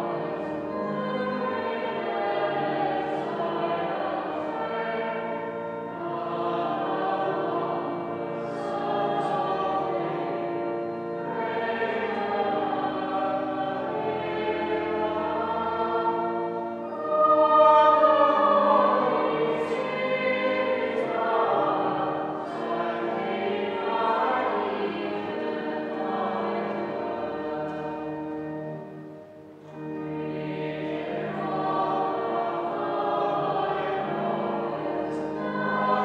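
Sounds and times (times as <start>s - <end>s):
choir singing held chords: 0.0s - 36.0s.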